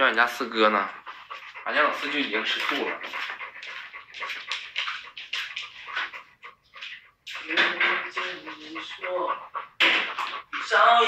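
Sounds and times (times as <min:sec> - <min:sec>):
dog panting rapidly: 0:00.0 - 0:11.0.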